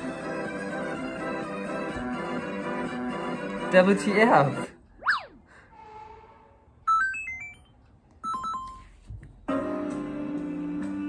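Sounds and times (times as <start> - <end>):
electronic falling glide: 5.0 - 5.4
electronic beeping tones: 6.9 - 8.8.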